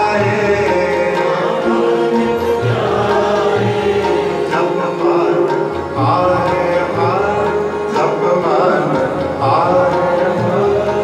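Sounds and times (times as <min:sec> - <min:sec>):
bowed string instruments: 0:00.0 - 0:11.0
low tabla strokes: 0:00.0 - 0:11.0
men singing together: 0:00.0 - 0:11.0.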